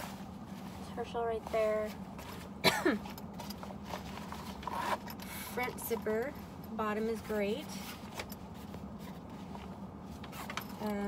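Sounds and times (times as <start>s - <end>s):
backpack fabric rustling: 0.0s - 11.0s
person coughing: 2.6s - 3.1s.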